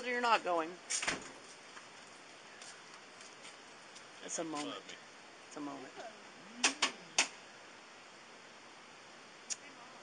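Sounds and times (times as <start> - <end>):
low hum of a voice: 4.2 - 7.3, 9.5 - 10.0.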